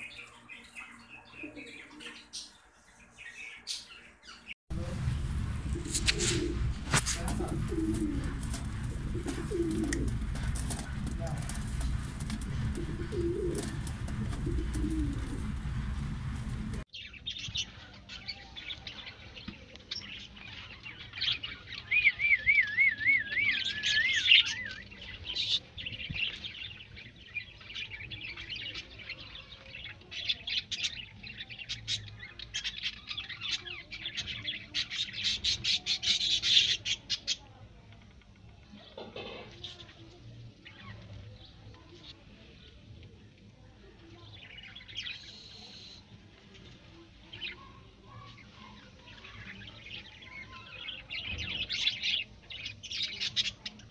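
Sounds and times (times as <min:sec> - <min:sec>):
birds chirping and twittering: 0:00.0 - 0:53.9
heavy low rumble: 0:04.7 - 0:16.9
pigeons cooing: 0:05.8 - 0:15.6.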